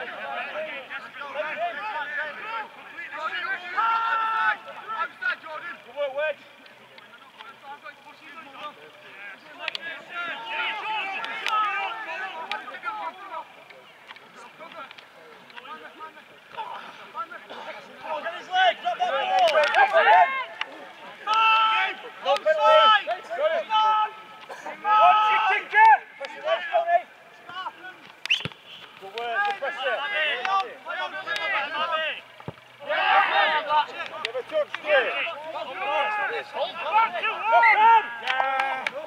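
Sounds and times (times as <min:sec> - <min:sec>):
people shouting: 0:00.0 - 0:06.4, 0:09.1 - 0:13.6, 0:15.8 - 0:39.0.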